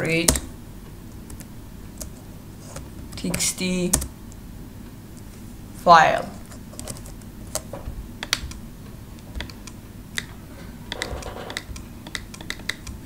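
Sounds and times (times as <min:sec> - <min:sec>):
keyboard typing: 0:06.5 - 0:08.6, 0:09.3 - 0:13.0.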